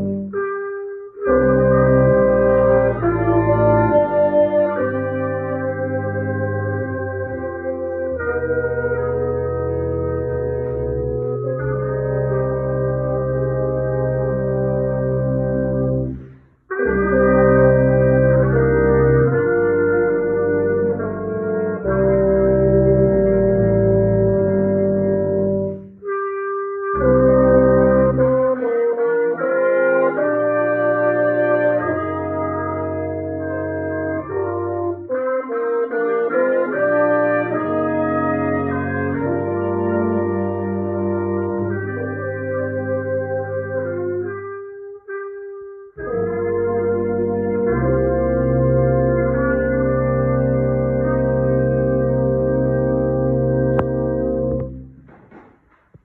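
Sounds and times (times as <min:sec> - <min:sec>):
brass ensemble playing chords: 0:00.0 - 0:55.4.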